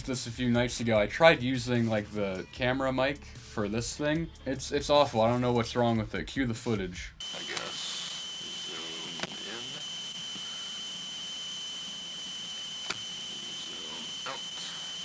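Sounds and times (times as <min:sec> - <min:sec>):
steady hiss: 0:07.2 - 0:11.2
high-pitched whine: 0:07.2 - 0:15.0
sharp clicks: 0:09.1 - 0:09.4, 0:12.8 - 0:13.1.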